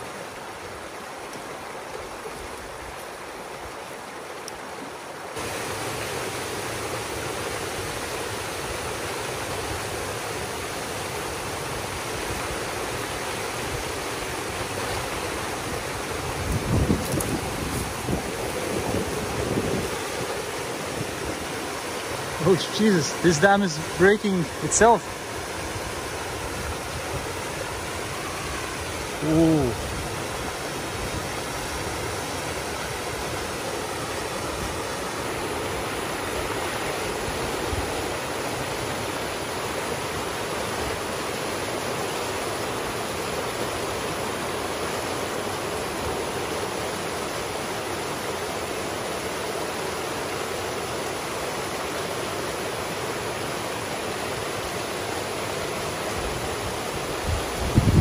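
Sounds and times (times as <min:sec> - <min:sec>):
water rushing through a dam breach: 0:00.0 - 0:58.0.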